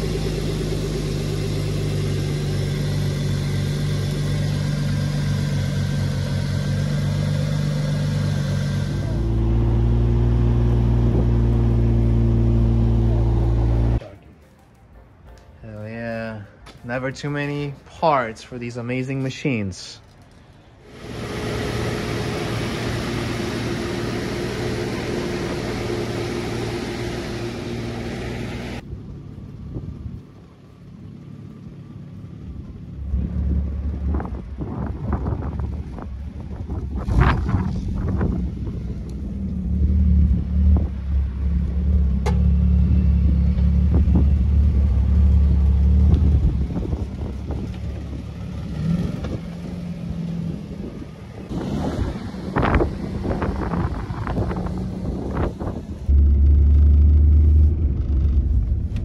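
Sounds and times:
car engine rumbling: 0.0s - 14.2s, 20.0s - 59.0s
low hum: 20.7s - 59.0s.

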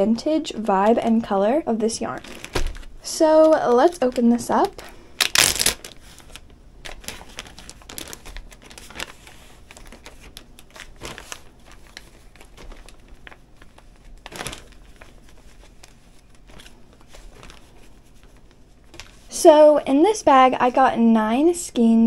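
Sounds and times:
plastic bag crinkling: 0.4s - 19.4s.

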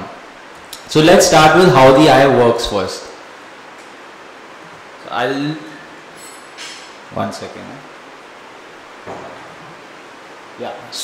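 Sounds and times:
microphone room tone hiss: 0.0s - 11.0s.

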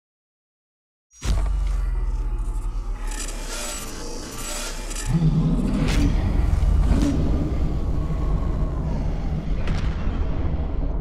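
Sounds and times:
deep rumble: 1.2s - 11.0s.

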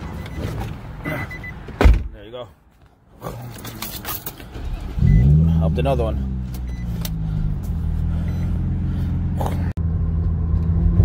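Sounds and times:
car door thump: 1.8s - 2.2s
car engine drone: 3.2s - 11.0s.

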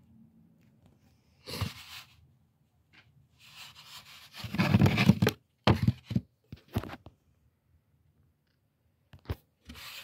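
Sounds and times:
rubbing scrape on plastic: 9.7s - 10.0s.

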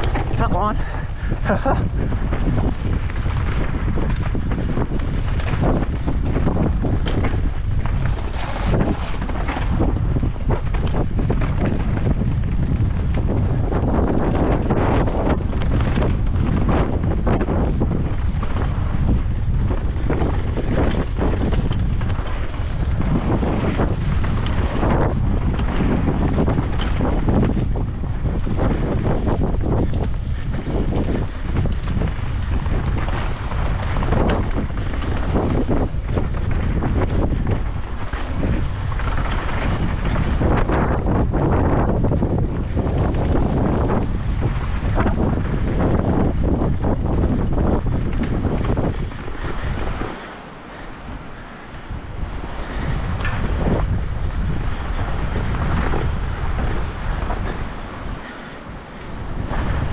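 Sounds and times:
bike clattering on bumps: 0.0s - 59.9s
wind buffeting microphone: 0.0s - 59.9s.

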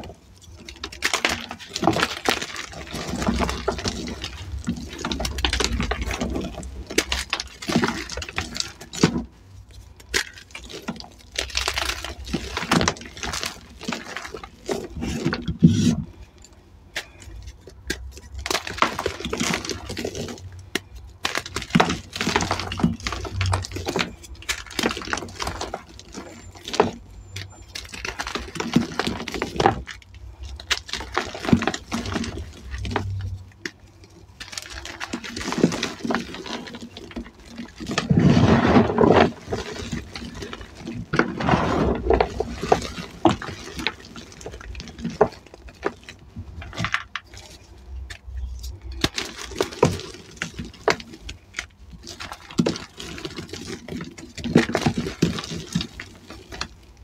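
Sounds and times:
hands crushing chalk blocks: 0.0s - 57.0s.

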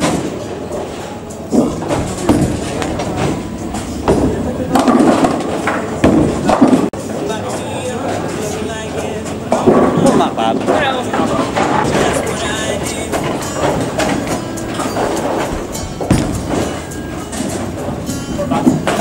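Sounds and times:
bowling balls rolling: 0.0s - 19.0s
people's voices: 0.4s - 15.0s
background music: 7.0s - 19.0s.

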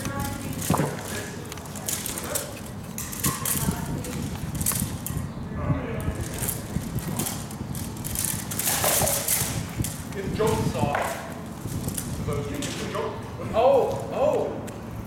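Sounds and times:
armour rattling: 0.0s - 5.3s, 6.2s - 12.3s
voices talking: 0.0s - 14.8s.

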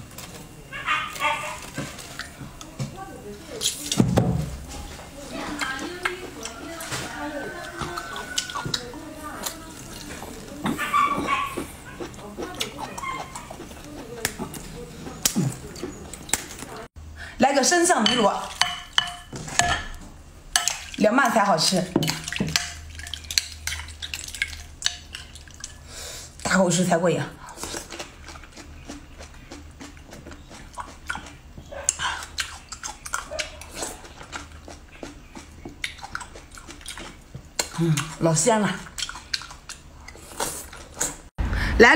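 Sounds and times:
wet chewing sounds: 0.1s - 2.8s, 4.7s - 17.0s, 22.0s - 26.4s, 27.4s - 41.3s.

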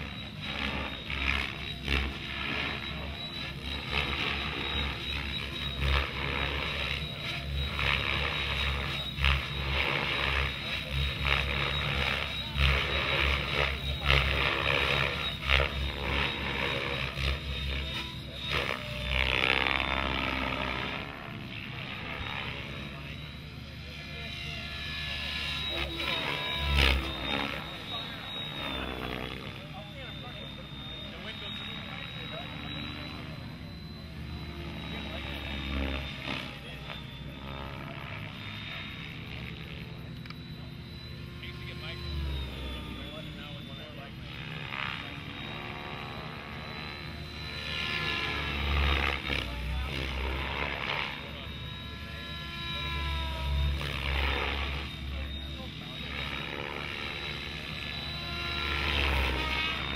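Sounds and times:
rc helicopter rotor whine: 0.0s - 59.9s.

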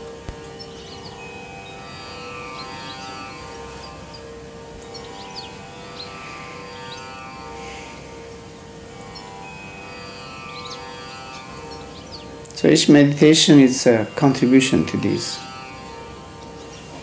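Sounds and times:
light high notes: 0.0s - 17.0s
sustained drone music: 0.0s - 17.0s.

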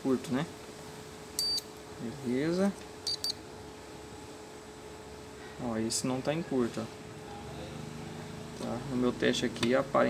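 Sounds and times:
steady hum: 0.0s - 10.0s
multimeter high beeps: 1.4s - 1.7s, 3.0s - 3.4s.

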